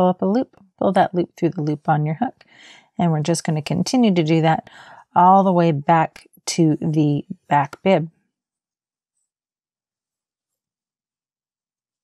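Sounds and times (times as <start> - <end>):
person speaking: 5.2 - 8.1.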